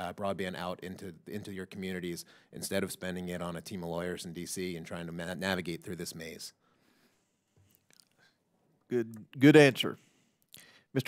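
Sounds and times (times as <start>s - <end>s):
man speaking: 0.0s - 6.6s, 8.9s - 10.0s.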